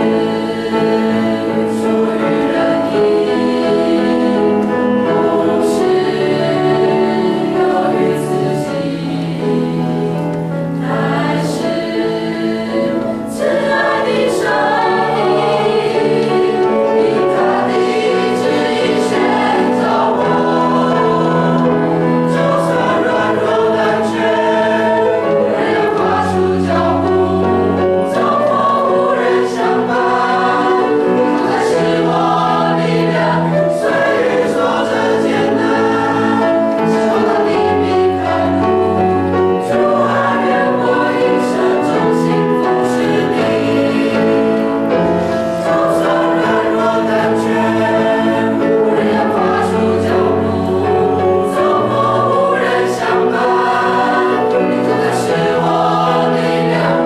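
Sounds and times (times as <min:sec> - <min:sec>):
choir singing a hymn: 0:00.0 - 0:57.0.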